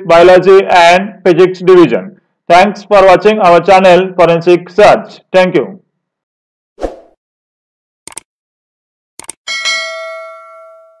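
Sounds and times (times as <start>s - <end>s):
bell ding: 9.5s - 11.0s.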